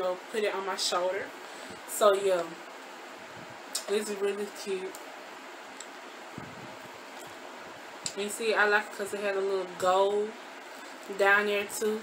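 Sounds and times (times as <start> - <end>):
room fan whooshing hiss: 0.0 - 12.0.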